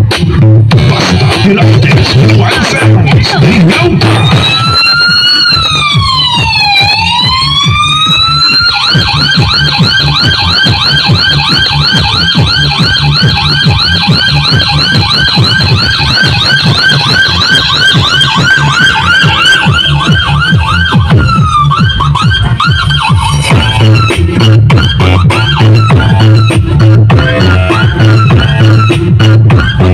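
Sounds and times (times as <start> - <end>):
steady bass beat: 0.0 - 29.9
siren wailing and yelping: 4.0 - 29.9.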